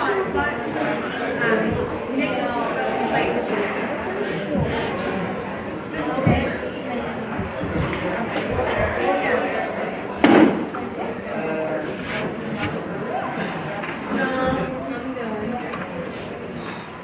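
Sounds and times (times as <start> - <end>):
spectators talking: 0.0 - 17.0
slam against rink boards: 10.2 - 10.6.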